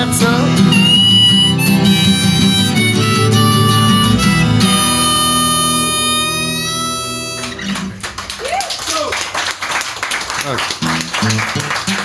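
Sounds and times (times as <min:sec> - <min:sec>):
harmonica and acoustic guitar chord: 0:00.0 - 0:08.0
street noise: 0:00.0 - 0:08.6.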